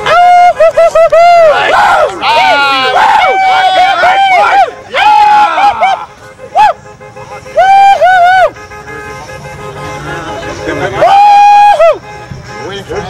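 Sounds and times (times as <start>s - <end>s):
loud whooping shouts: 0.0s - 8.6s, 10.8s - 12.1s
low chatter: 0.0s - 13.0s.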